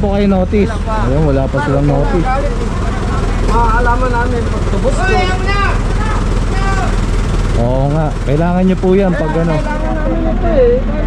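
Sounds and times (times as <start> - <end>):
people talking: 0.0 - 11.0
vehicle engine idling: 0.0 - 11.0.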